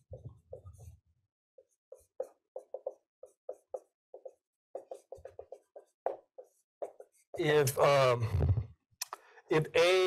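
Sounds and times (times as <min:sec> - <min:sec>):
marker writing on whiteboard: 0:00.0 - 0:08.1.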